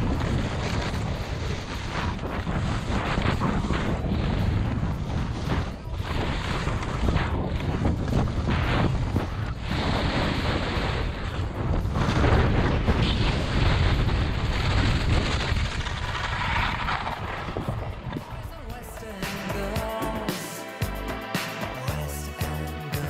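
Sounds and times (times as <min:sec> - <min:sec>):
wind buffeting microphone: 0:00.0 - 0:18.8
skis scraping on crusty snow: 0:00.0 - 0:19.0.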